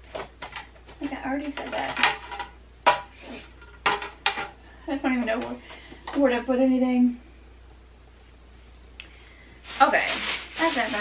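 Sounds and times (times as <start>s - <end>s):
trays knocking together: 3.7s - 4.6s.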